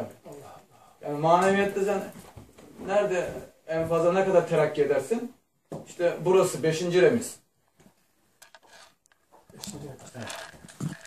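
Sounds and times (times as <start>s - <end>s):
handling noises: 7.8s - 11.0s.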